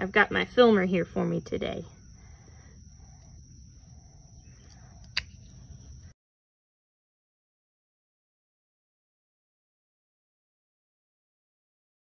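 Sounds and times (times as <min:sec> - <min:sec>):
quiet outdoor background: 0:00.0 - 0:06.2.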